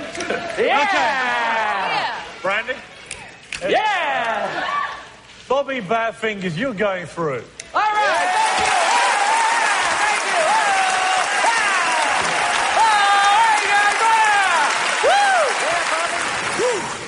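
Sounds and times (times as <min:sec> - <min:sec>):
audience whooping and cheering: 0:07.8 - 0:17.0
audience clapping: 0:08.1 - 0:17.0.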